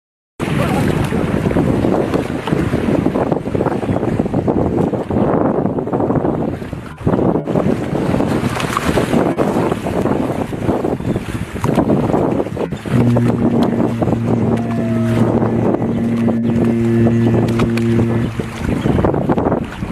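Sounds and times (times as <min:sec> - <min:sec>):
rushing bow wave water: 0:00.4 - 0:19.9
wind buffeting microphone: 0:00.4 - 0:19.9.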